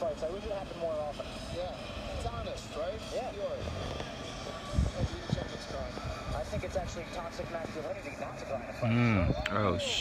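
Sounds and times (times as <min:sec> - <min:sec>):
crowd noise with voices calling: 0:00.0 - 0:10.0.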